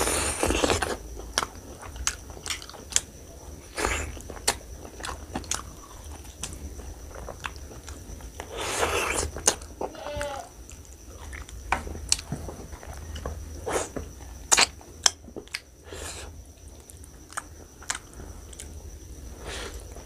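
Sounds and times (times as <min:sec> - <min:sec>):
wet chewing and lip smacks: 0:17.2 - 0:18.7.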